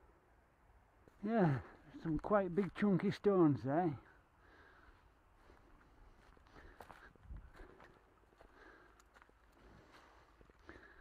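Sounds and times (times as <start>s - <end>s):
faint footsteps on leaf litter: 5.4s - 11.0s.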